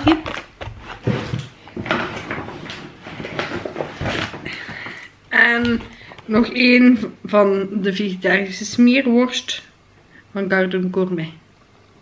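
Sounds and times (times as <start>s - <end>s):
plastic bag rustling: 0.0s - 5.0s.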